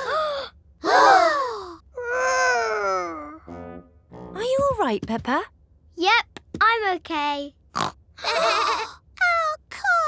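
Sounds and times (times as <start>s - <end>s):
cartoon children gasping and crying out: 0.0s - 3.4s
low buzzy sound: 3.4s - 4.6s.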